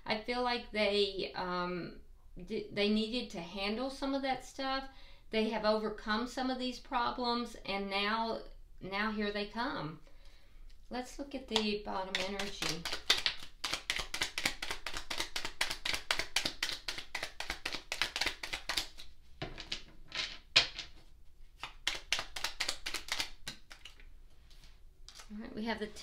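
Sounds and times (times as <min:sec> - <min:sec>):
cards being shuffled: 0:12.0 - 0:25.4.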